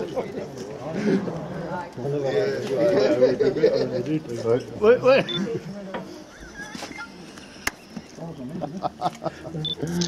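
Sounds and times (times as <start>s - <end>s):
group chatter: 0.0s - 10.0s.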